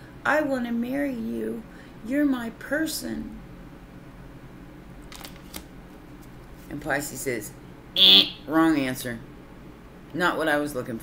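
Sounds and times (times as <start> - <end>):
cards clicking and rustling: 5.1 - 6.4.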